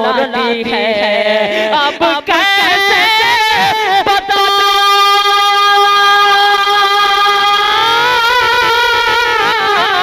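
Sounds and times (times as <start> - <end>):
man singing into a microphone: 0.0 - 10.0.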